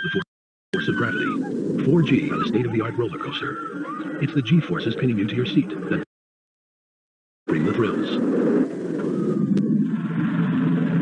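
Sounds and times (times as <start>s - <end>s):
roller coaster rumbling on track: 0.8s - 6.0s, 7.5s - 11.0s.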